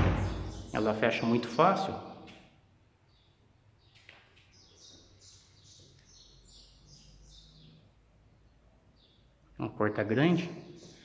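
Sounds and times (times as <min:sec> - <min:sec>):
faint high bird chirps: 0:03.1 - 0:08.0.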